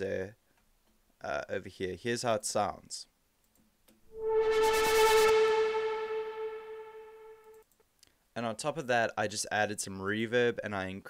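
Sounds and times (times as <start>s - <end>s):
synth riser effect: 4.1s - 7.6s
held synth note with fluttering hiss: 4.2s - 7.6s.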